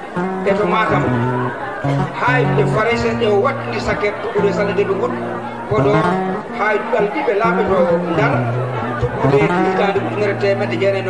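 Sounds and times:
instrumental music: 0:00.0 - 0:11.0.

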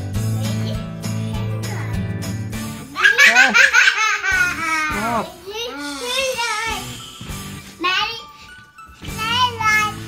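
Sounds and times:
girl laughing loudly: 0:03.0 - 0:05.2.

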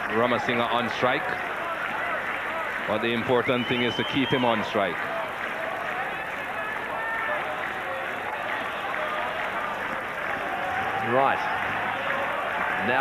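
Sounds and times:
crowd cheering and clapping: 0:00.0 - 0:13.0.

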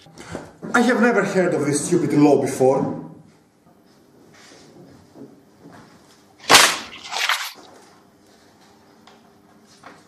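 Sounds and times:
book pages flipping: 0:06.5 - 0:07.7.

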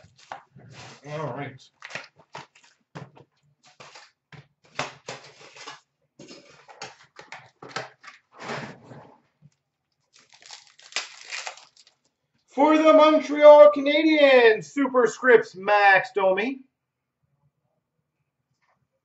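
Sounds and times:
foil packs crinkling and tearing: 0:00.0 - 0:02.8, 0:03.6 - 0:08.2, 0:10.1 - 0:12.1.

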